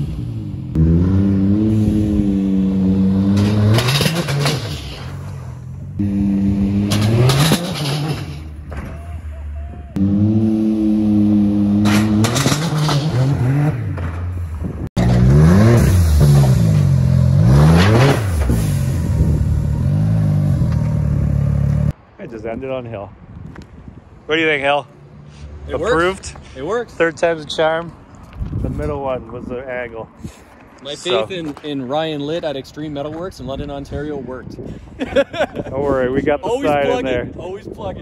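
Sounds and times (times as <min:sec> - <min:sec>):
engine revving: 0:00.0 - 0:08.6, 0:09.9 - 0:14.3, 0:15.0 - 0:21.9.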